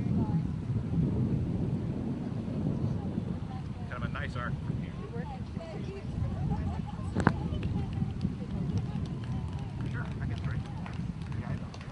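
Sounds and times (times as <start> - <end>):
steady low rumble: 0.0 - 11.9
people talking indistinctly: 2.8 - 11.9.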